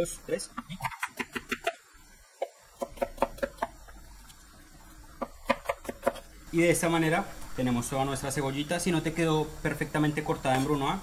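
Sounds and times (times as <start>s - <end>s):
knife chopping on cutting board: 2.8s - 3.8s, 5.2s - 6.3s.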